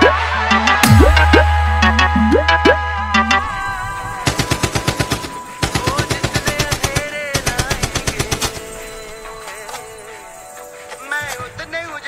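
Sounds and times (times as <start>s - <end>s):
held synth tones: 0.0s - 4.4s
machine-gun fire bursts: 4.2s - 8.9s.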